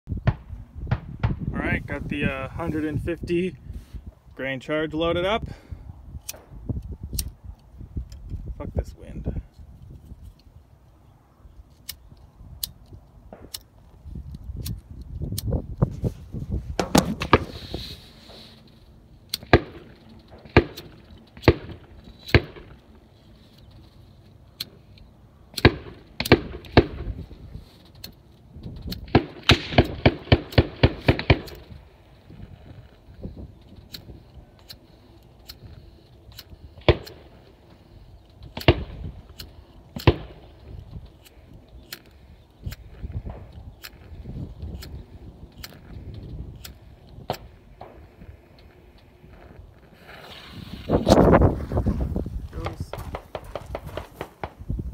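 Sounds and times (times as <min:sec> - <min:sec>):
wind buffeting microphone: 0:00.1 - 0:24.0, 0:25.8 - 0:54.9
sharp clicks and knocks: 0:16.8 - 0:17.6.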